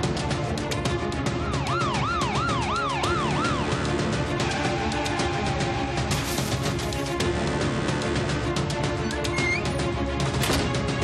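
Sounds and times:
dramatic music with percussive hits: 0:00.0 - 0:11.0
siren yelping: 0:01.5 - 0:03.7.

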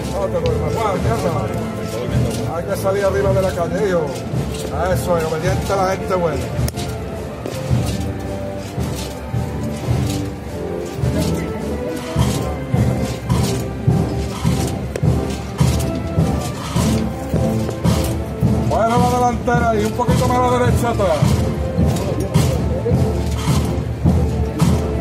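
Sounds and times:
drum strokes: 0:00.0 - 0:25.0
wind band playing a march: 0:00.0 - 0:25.0.

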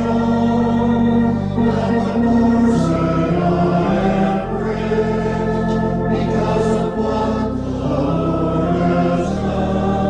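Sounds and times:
congregation singing a hymn: 0:00.0 - 0:10.0
organ chords: 0:00.0 - 0:10.0.

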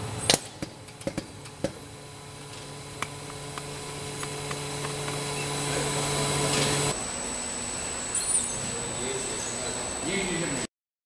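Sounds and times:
packing machine humming: 0:00.0 - 0:10.6.

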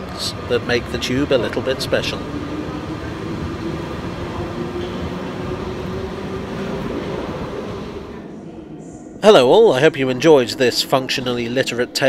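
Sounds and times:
train hum: 0:00.0 - 0:12.0
train rumbling: 0:00.0 - 0:12.0.

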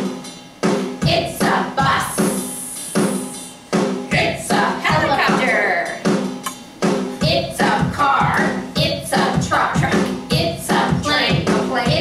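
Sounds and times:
children's song with drum beat: 0:00.0 - 0:12.0.

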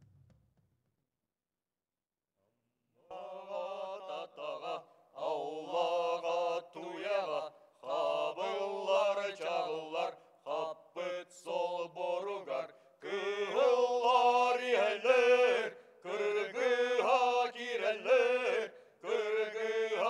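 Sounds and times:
men chanting unaccompanied: 0:03.1 - 0:20.0.

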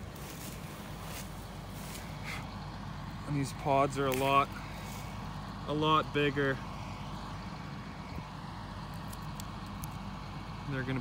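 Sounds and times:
rustling of dry plants: 0:00.0 - 0:05.6
vehicle engine idling: 0:00.0 - 0:11.0.

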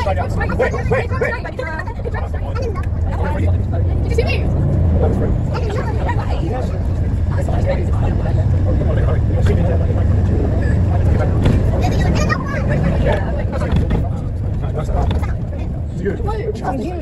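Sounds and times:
bus engine rumble: 0:00.0 - 0:17.0
people talking indistinctly: 0:00.0 - 0:17.0.

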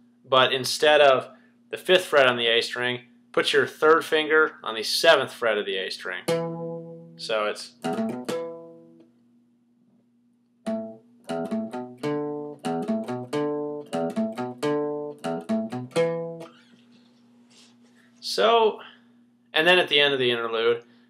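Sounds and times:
acoustic guitar riff: 0:06.2 - 0:09.0, 0:10.7 - 0:16.7.

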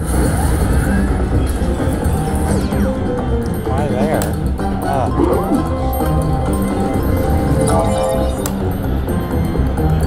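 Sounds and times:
slot machine game music: 0:05.1 - 0:08.8.

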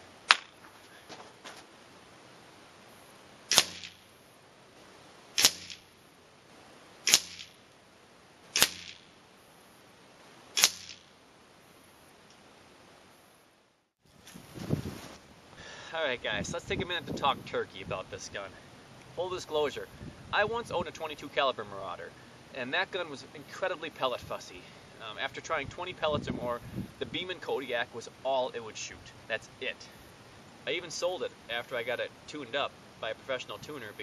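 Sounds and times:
air rifle shots and pellet strikes: 0:00.3 - 0:00.6, 0:03.5 - 0:04.1, 0:05.4 - 0:06.0, 0:07.0 - 0:07.6, 0:08.5 - 0:09.1, 0:10.6 - 0:11.1
wind rustling on microphone: 0:14.0 - 0:21.7, 0:23.9 - 0:27.9.

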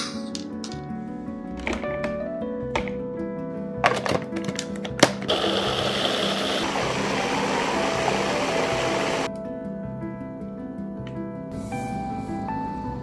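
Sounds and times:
background music: 0:00.0 - 0:13.0
food processor motor pureeing: 0:05.3 - 0:09.3.

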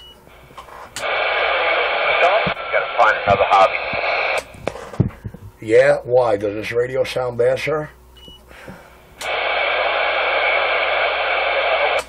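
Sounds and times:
radio static hiss: 0:00.3 - 0:05.8, 0:09.2 - 0:12.0.

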